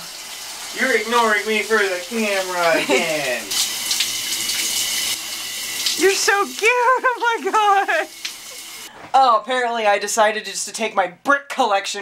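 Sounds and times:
shower spraying water: 0:00.0 - 0:08.9.

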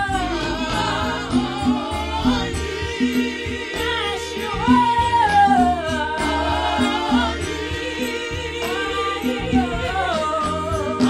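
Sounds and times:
gospel singing voices: 0:00.0 - 0:11.0.

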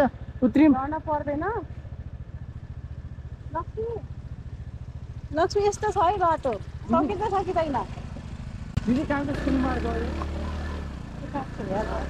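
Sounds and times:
motorcycle engine idling: 0:00.0 - 0:12.0.

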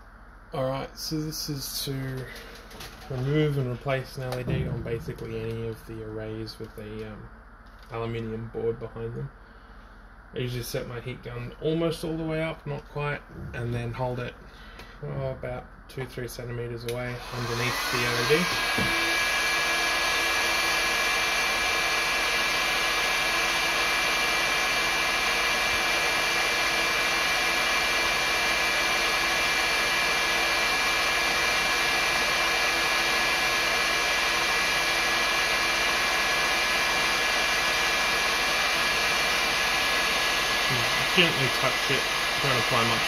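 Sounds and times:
heat gun blowing air: 0:17.0 - 0:43.0.

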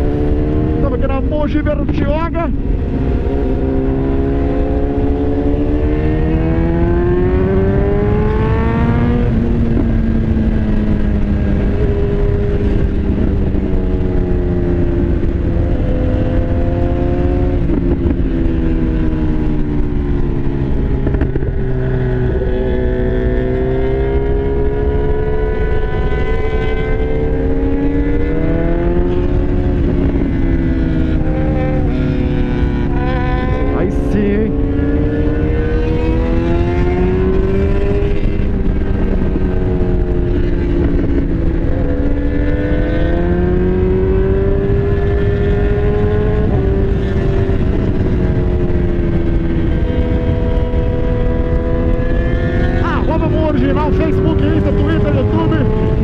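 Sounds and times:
motorcycle engine revving: 0:00.0 - 0:56.0
wind and road noise: 0:00.0 - 0:56.0.

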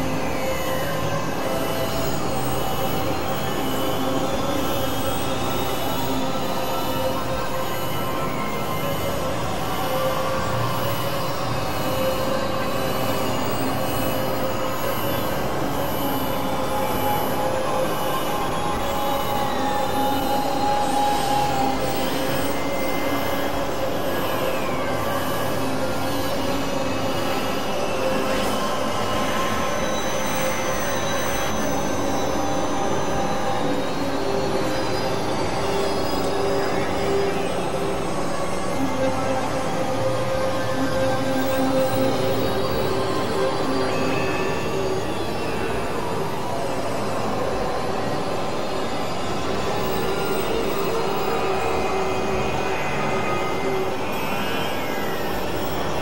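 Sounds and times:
sustained drones: 0:00.0 - 0:56.0.

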